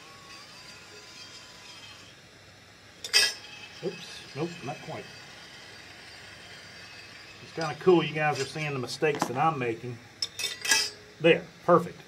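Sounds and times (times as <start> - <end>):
motor-driven wheel humming: 0.0 - 11.8.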